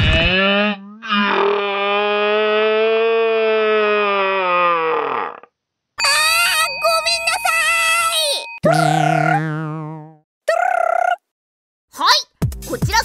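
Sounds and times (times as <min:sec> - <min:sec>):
ringing tone sound effect: 0:06.0 - 0:09.3.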